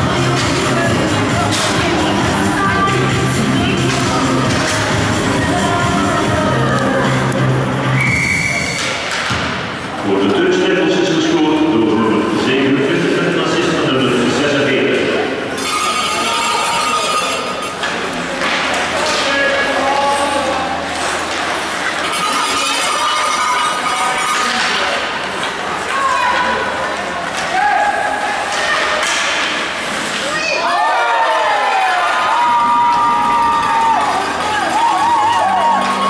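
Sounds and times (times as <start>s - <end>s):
hockey sticks and puck clacking: 0.2s - 2.2s, 3.3s - 5.1s, 8.0s - 10.4s, 15.6s - 36.0s.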